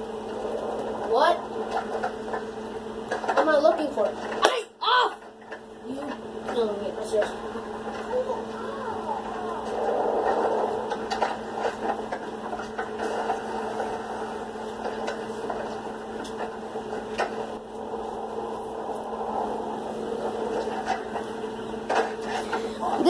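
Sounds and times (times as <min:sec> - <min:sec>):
muffled background sound: 0:00.0 - 0:23.0
steady hum: 0:00.0 - 0:23.0.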